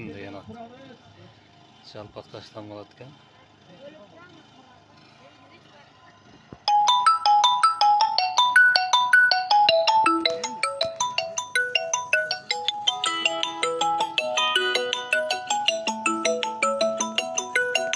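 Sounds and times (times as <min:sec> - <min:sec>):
marimba ringtone melody: 0:06.7 - 0:17.9.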